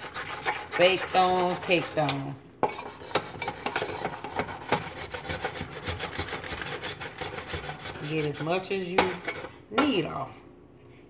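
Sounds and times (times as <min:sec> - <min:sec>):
pumice stone scrubbing metal pan: 0:00.0 - 0:10.2.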